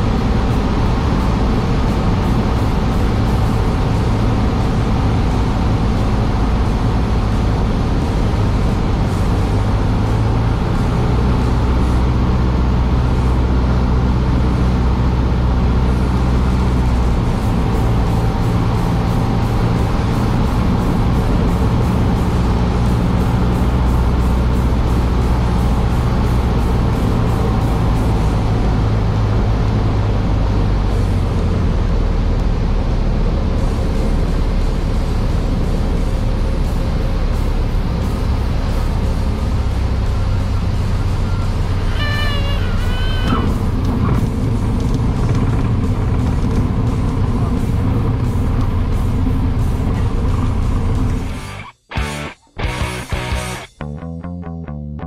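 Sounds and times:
airplane engine droning: 0.0 - 53.9.

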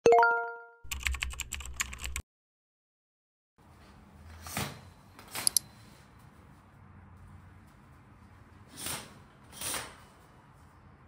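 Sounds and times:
keyboard keystrokes: 0.9 - 2.2.

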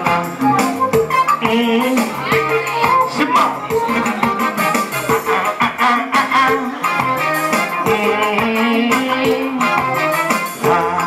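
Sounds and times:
keyboard melody: 0.0 - 11.0
steady beat: 0.0 - 11.0.

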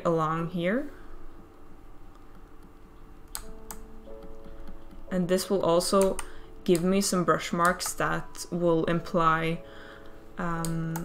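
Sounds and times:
quiet piano music: 0.0 - 11.0
computer keyboard keystrokes: 2.1 - 5.1, 5.9 - 6.9, 7.6 - 8.0, 10.6 - 11.0.

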